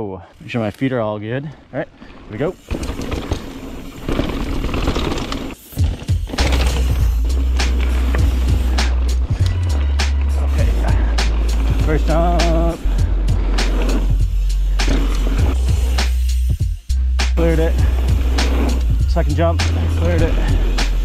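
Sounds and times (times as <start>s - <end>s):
bike tyre rumble: 1.6s - 16.7s, 17.3s - 21.0s
bike rattling over rough ground: 1.8s - 16.0s, 17.4s - 21.0s.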